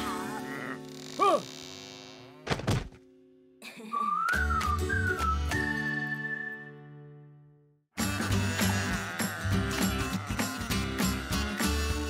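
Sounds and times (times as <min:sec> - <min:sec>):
rising and falling whistle tone: 0:03.9 - 0:07.0.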